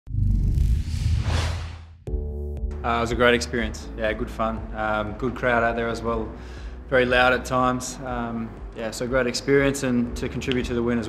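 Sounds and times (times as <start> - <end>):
deep rumbling whoosh: 0.0 - 2.2.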